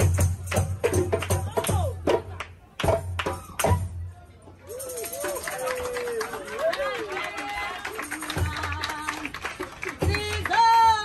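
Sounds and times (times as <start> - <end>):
performers calling and chanting: 0.0 - 11.0.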